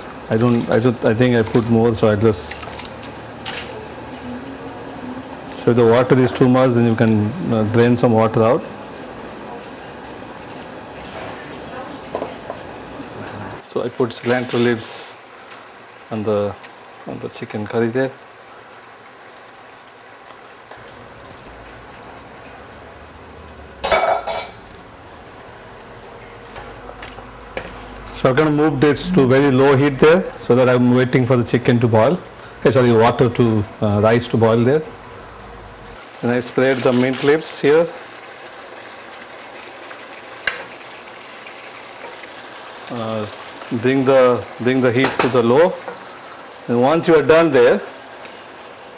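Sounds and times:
pot of water boiling: 0.0 - 48.9.

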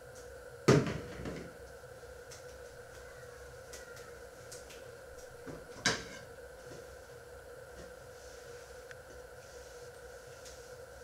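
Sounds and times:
steady background hum: 0.0 - 11.0.

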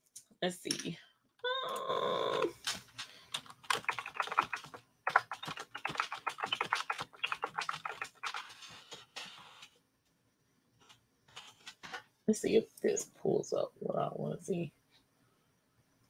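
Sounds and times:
computer keyboard typing: 3.3 - 8.6.

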